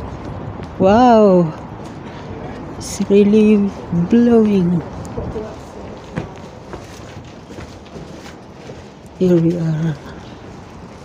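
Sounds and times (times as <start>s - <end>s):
footsteps: 0.0s - 11.0s
wind rumbling on microphone: 0.0s - 11.0s.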